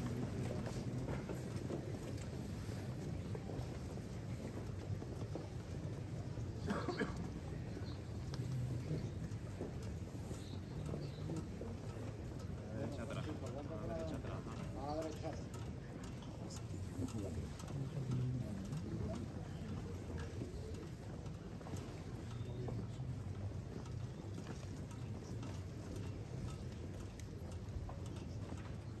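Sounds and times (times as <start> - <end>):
shuffling footsteps: 0.0 - 6.6
crowd murmur: 0.0 - 29.0
voices: 6.6 - 24.1.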